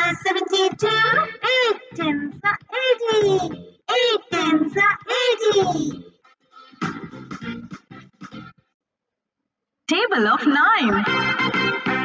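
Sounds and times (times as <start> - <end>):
child singing: 0.0 - 6.0
light backing music: 0.0 - 8.6.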